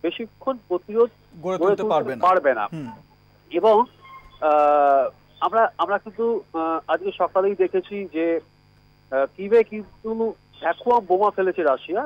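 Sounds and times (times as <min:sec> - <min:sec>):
low electrical hum: 0:00.0 - 0:12.0
man speaking: 0:01.4 - 0:03.0.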